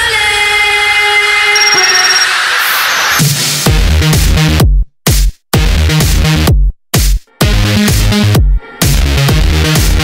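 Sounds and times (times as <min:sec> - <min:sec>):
thin high tone: 0:01.5 - 0:02.9.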